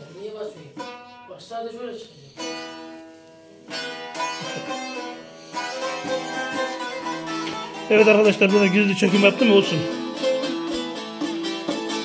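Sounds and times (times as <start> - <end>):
long-necked lute strummed: 0.8 - 1.3, 2.3 - 12.0.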